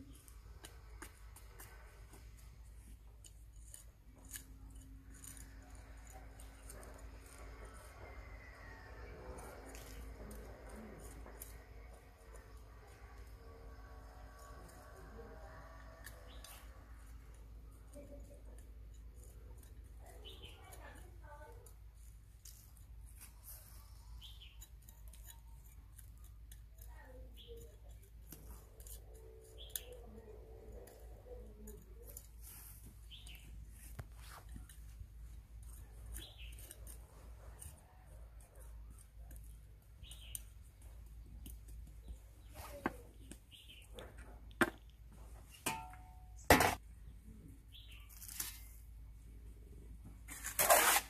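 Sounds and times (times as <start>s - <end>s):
stick scraping potting soil: 0.0s - 46.0s, 47.7s - 48.9s, 50.0s - 51.0s
low background murmur: 0.0s - 50.3s
hand tool scraping soil: 50.3s - 51.0s.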